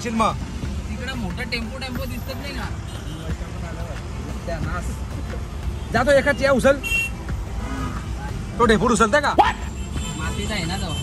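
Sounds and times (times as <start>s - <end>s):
engine and road rumble: 0.0s - 11.0s
men calling out and chanting: 0.0s - 11.0s.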